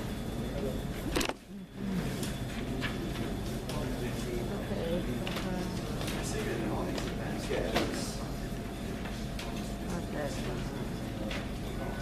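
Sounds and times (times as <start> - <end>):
room noise murmur: 0.0 - 12.0.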